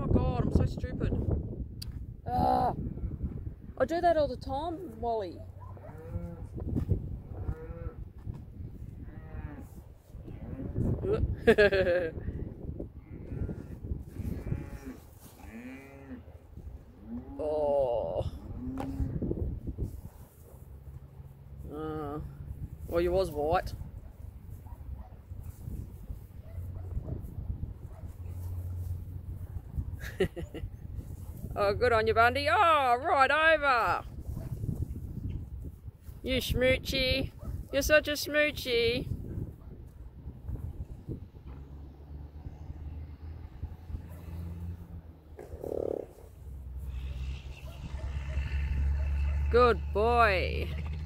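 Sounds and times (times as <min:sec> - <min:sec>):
horse rolling in dirt: 0:13.3 - 0:16.9
horse rolling in dry dirt: 0:13.3 - 0:17.0, 0:19.2 - 0:21.7, 0:24.1 - 0:31.6, 0:50.6 - 0:51.0
horse groaning: 0:45.3 - 0:51.0.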